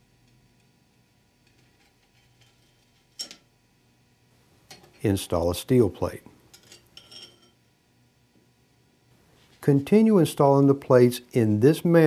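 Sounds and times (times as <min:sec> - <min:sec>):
metallic clink of a plate: 0:06.6 - 0:07.6.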